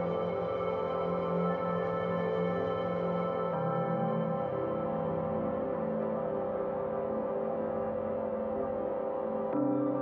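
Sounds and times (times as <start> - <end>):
ambient drone music: 0.0 - 10.0.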